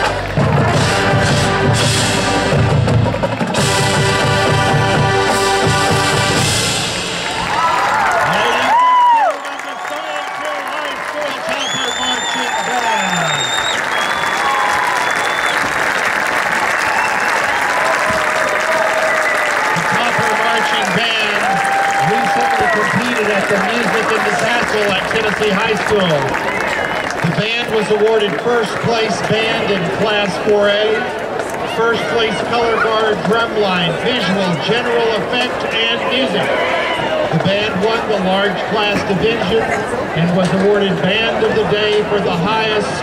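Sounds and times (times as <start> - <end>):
marching band brass and drums: 0.0 - 8.8, 11.4 - 43.0
crowd cheering and applause: 0.0 - 43.0
crowd shouts: 7.2 - 15.7, 16.6 - 43.0
whistles: 9.6 - 15.7, 16.8 - 17.6.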